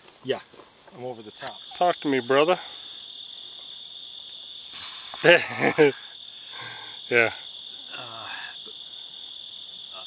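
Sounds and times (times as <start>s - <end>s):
insects trilling: 0.0s - 10.0s.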